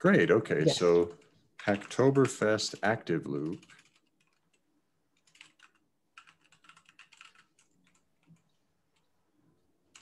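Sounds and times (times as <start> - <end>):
typing on computer keyboard: 1.0 - 9.1.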